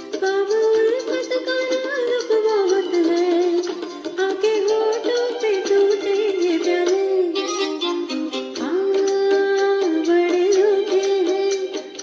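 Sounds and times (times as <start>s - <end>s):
instrumental backing track: 0.0s - 12.0s
woman singing into microphone: 0.0s - 12.0s.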